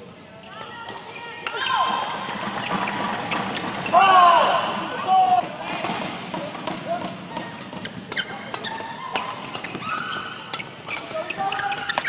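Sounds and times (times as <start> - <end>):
crowd voices and shouts: 0.4 - 12.0.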